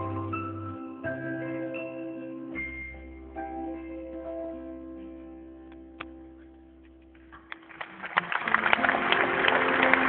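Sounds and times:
audience clapping and cheering: 7.4 - 10.0.

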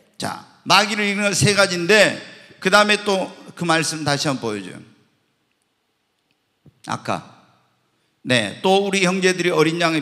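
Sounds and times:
man speaking into microphone: 0.0 - 5.1, 6.8 - 7.6, 8.2 - 10.0.

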